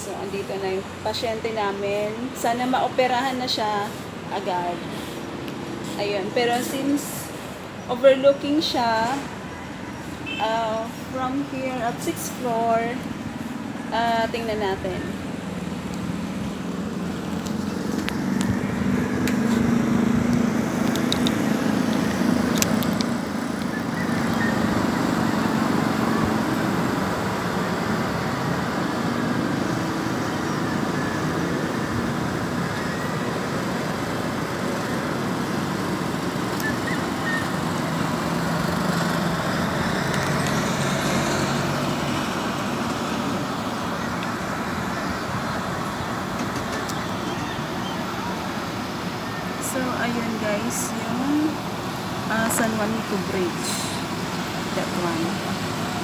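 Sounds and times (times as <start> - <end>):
passing vehicles humming: 0.0 - 56.0
road traffic noise: 0.0 - 56.0.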